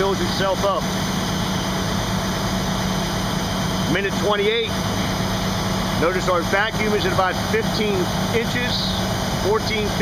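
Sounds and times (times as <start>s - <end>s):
fire engine running: 0.0s - 10.0s.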